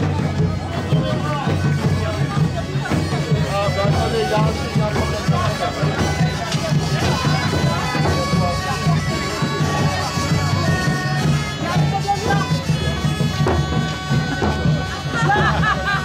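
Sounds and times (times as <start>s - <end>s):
bagpipes playing: 0.0s - 16.0s
crowd chatter: 0.0s - 16.0s.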